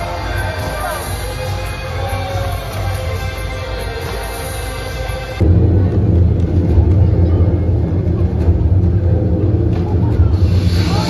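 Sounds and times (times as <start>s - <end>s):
deep bass rumble: 5.4s - 11.0s.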